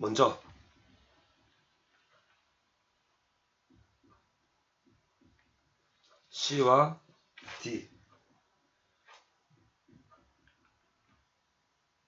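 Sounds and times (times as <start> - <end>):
pencil ticking on paper: 3.6 - 11.6.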